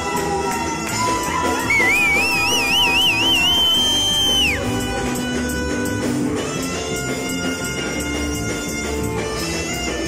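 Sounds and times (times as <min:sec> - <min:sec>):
live band playing dance music: 0:00.0 - 0:10.0.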